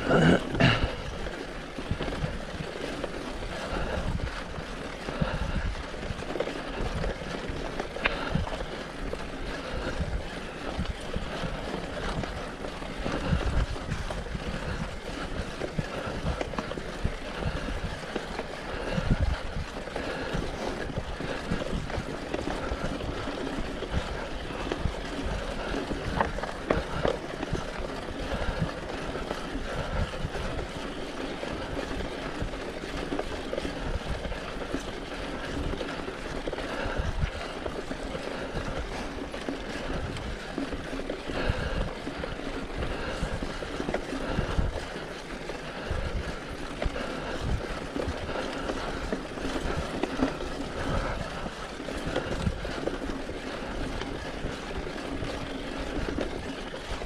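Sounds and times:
bike knocking and rattling: 0:00.0 - 0:57.0
tyres rumbling on dirt: 0:00.0 - 0:57.0.

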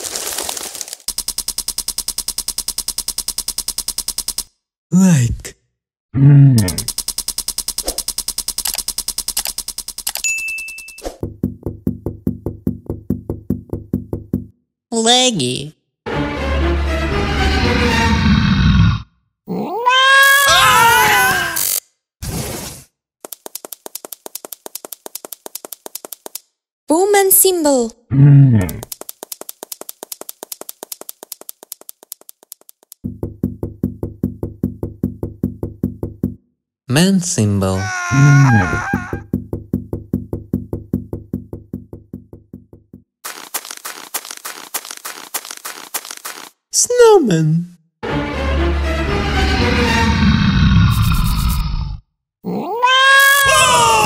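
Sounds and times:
rapid mechanical clicking: 0:01.1 - 0:04.5, 0:06.7 - 0:10.3, 0:23.2 - 0:26.5, 0:28.8 - 0:33.0
cartoon footsteps: 0:06.6 - 0:14.6, 0:22.5 - 0:26.6, 0:28.6 - 0:36.4, 0:37.8 - 0:46.7
music: 0:16.1 - 0:18.1, 0:48.0 - 0:50.1
cat meowing: 0:19.5 - 0:21.6, 0:37.8 - 0:39.2, 0:52.5 - 0:54.0.

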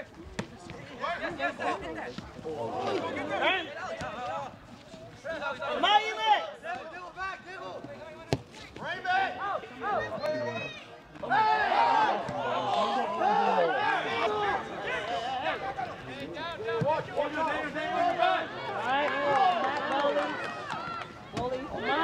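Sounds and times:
players and spectators shouting: 0:00.8 - 0:04.5, 0:05.2 - 0:08.2, 0:08.8 - 0:22.0.

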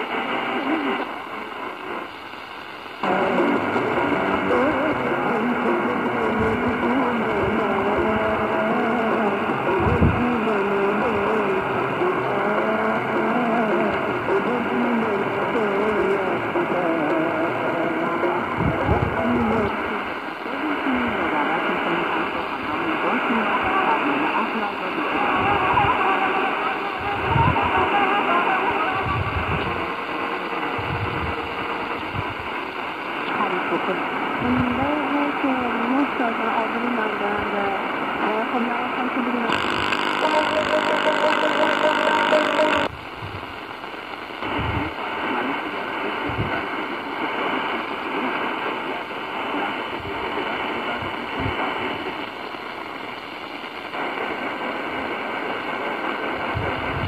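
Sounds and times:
speech on radio: 0:00.0 - 0:02.1, 0:03.0 - 0:42.9, 0:44.3 - 0:54.6
music on radio: 0:00.0 - 0:57.0
radio static: 0:00.0 - 0:57.0.

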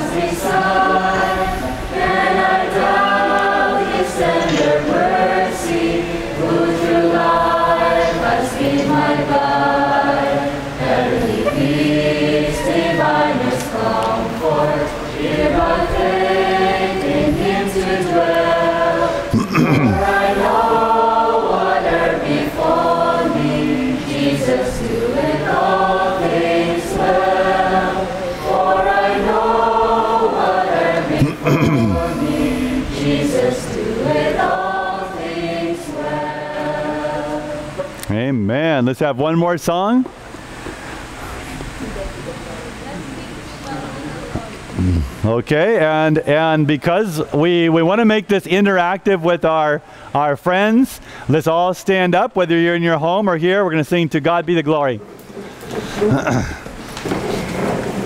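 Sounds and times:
group singing a praise song: 0:00.0 - 0:38.2.

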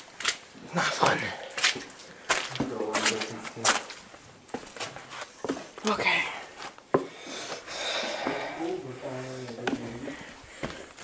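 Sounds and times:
footsteps on boards: 0:01.0 - 0:05.9, 0:08.1 - 0:08.6, 0:09.4 - 0:11.0.

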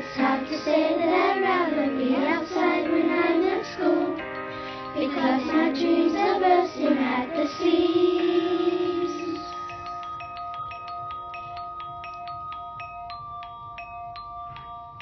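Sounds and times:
children's song singing: 0:00.0 - 0:10.0
sustained backing chords: 0:00.0 - 0:12.3.

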